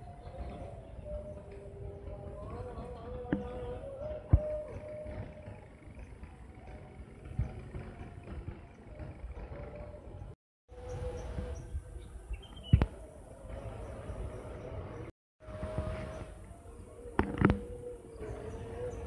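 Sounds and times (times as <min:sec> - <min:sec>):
faint engine hum: 0:00.0 - 0:19.0.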